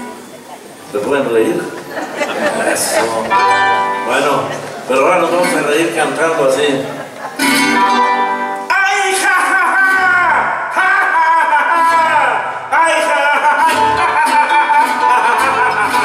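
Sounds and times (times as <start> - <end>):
strummed guitars and harp: 3.0 - 8.7, 11.6 - 16.0
man singing: 8.7 - 16.0.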